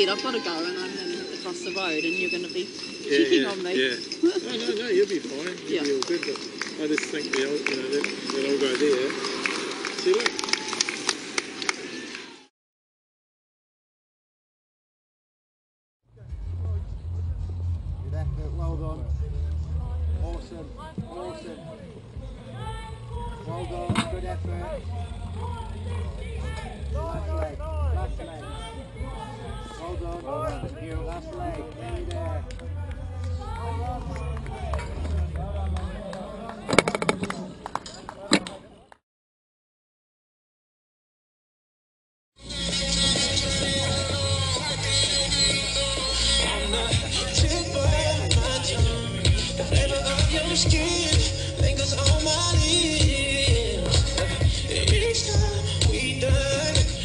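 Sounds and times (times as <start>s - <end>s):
voices chattering: 0.0s - 10.3s, 16.2s - 39.0s, 42.5s - 57.0s
roadside ambience: 0.0s - 12.4s, 16.1s - 39.0s, 42.4s - 57.0s.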